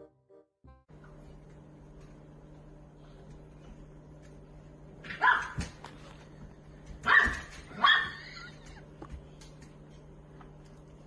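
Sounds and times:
dog barking high-pitched: 0:05.1 - 0:05.6, 0:07.0 - 0:08.2.

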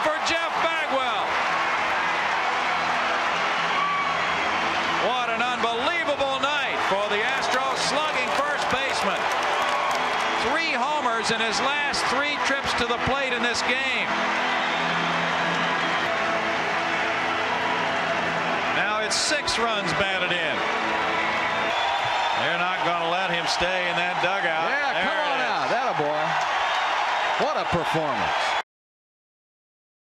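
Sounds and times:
crowd cheering: 0:00.0 - 0:28.6
crowd clapping: 0:00.0 - 0:28.6.

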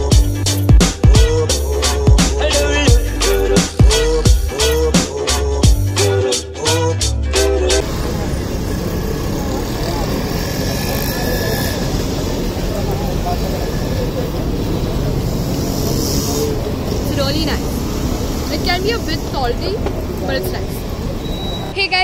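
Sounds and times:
vehicles rumbling: 0:00.0 - 0:06.2, 0:07.1 - 0:22.0
background music with a beat: 0:00.0 - 0:07.8
faint voices: 0:07.8 - 0:22.0.

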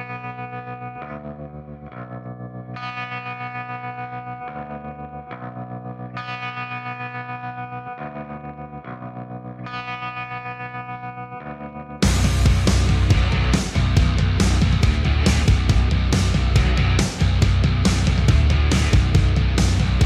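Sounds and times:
distorted electric guitar chords: 0:00.0 - 0:20.0.

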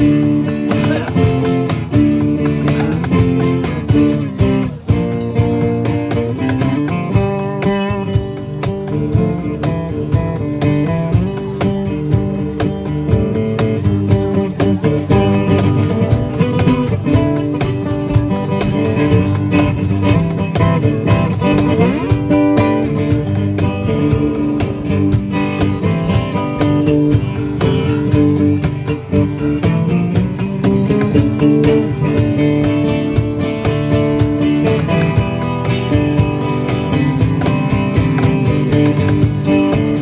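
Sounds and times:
acoustic guitars strummed and picked: 0:00.0 - 0:40.0
cajon steady beat: 0:00.0 - 0:40.0.

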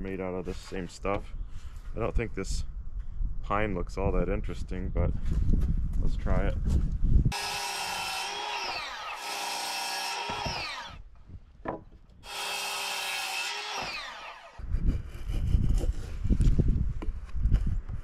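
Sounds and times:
circular saw cutting wood: 0:07.3 - 0:11.0, 0:12.2 - 0:14.6
wood knocking and rubbing: 0:11.6 - 0:12.0.

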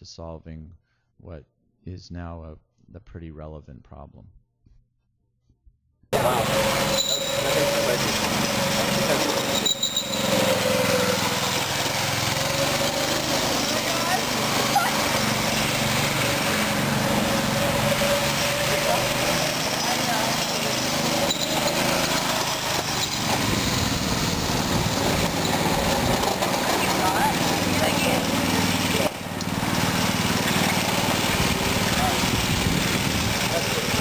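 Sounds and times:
small gas engine running: 0:06.1 - 0:34.0.

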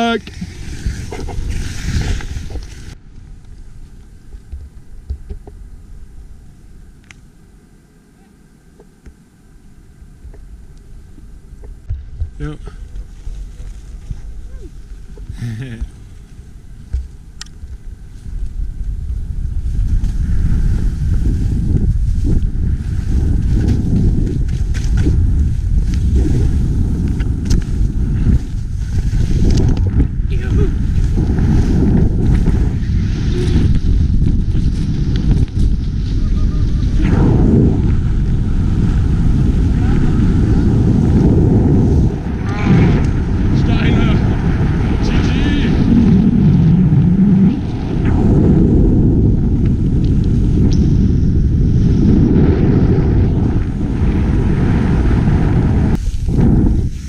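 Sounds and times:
skis hissing through snow: 0:00.0 - 0:03.0, 0:19.6 - 0:29.6, 0:30.8 - 0:37.0, 0:54.6 - 0:57.0
wind buffeting microphone: 0:00.0 - 0:07.6, 0:09.6 - 0:57.0.

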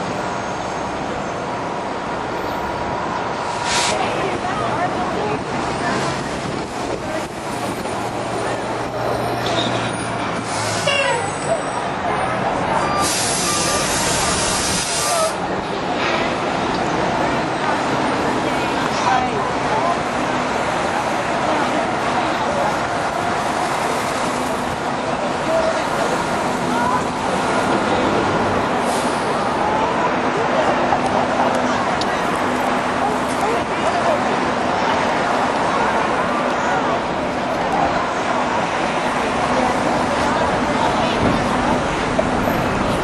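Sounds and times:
large vehicle engine running: 0:00.0 - 0:43.0
street traffic noise: 0:00.0 - 0:43.0.

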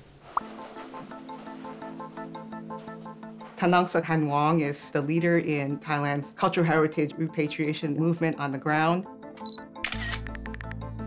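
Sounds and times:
documentary score music: 0:00.4 - 0:05.9.

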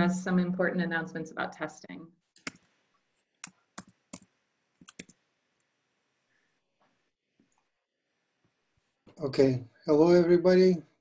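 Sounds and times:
mouse and keyboard clicks: 0:02.4 - 0:02.7, 0:03.4 - 0:05.2.

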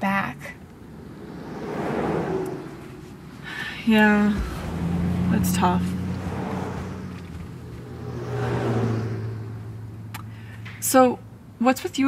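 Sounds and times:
car engine hum: 0:00.0 - 0:12.0
road and tyre noise: 0:00.0 - 0:12.0.

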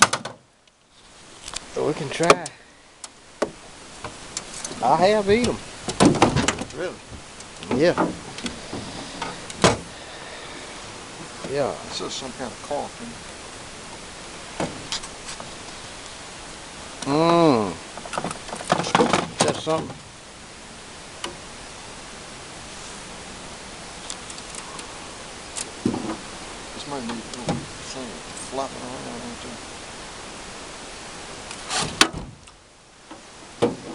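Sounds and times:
steady low hiss: 0:00.0 - 0:33.9.

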